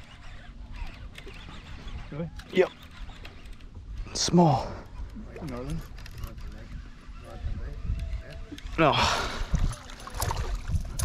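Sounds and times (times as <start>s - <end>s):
wind rumble on microphone: 3.7s - 11.0s.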